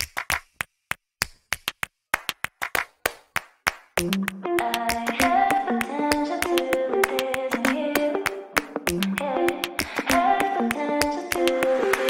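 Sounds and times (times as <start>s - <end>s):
sharp percussive claps: 0.0s - 12.0s.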